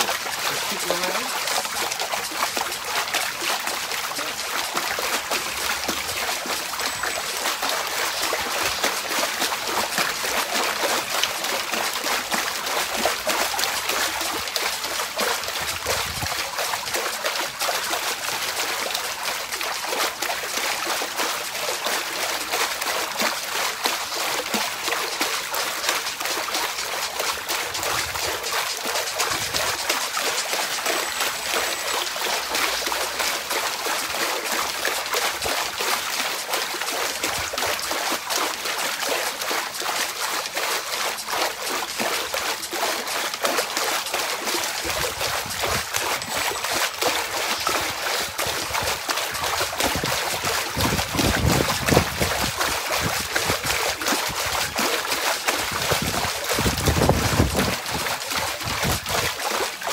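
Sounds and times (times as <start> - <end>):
water splashing in paddling pool: 0.0 - 59.9.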